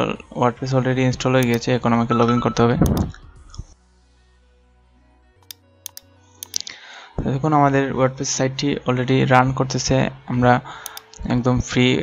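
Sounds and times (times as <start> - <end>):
computer mouse button clicking: 5.4 - 6.6, 10.8 - 11.1.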